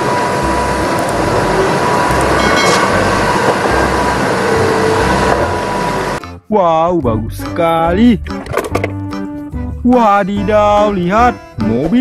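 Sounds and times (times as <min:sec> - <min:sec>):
thin steady whine: 0:00.0 - 0:06.2
truck diesel engine: 0:00.0 - 0:06.4
road noise: 0:00.0 - 0:06.5.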